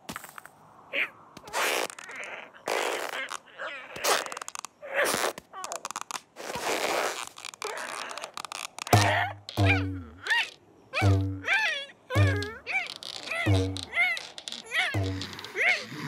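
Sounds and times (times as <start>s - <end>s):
cartoon character squeaks and grunts: 1.0s - 6.0s, 7.5s - 16.0s
comic cartoon sound effects: 9.0s - 15.9s.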